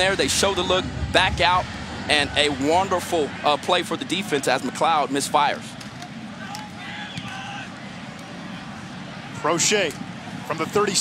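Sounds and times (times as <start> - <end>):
stadium crowd hubbub: 0.0 - 11.0.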